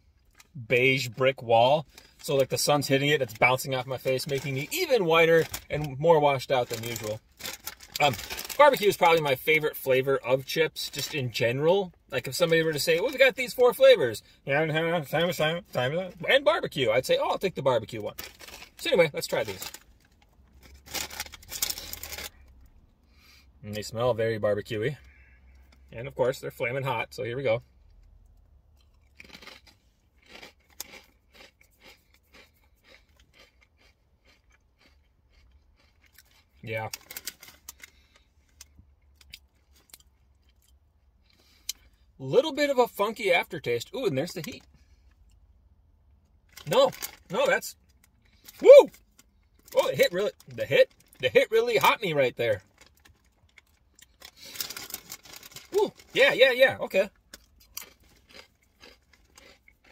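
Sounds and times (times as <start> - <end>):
potato chip crunching: 1.8 - 11.4, 15.0 - 22.7, 28.8 - 40.8, 43.8 - 44.6, 46.4 - 59.9.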